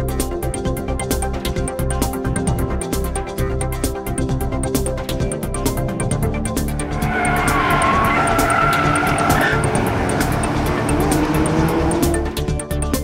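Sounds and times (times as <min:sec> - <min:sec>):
car engine running: 0:05.1 - 0:13.0
car tyres squealing: 0:06.8 - 0:12.4.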